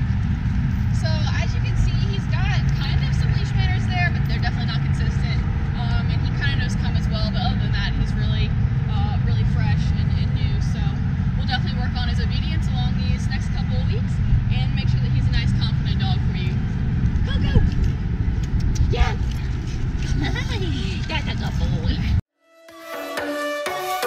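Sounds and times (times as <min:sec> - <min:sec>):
low rumble: 0:00.0 - 0:22.2.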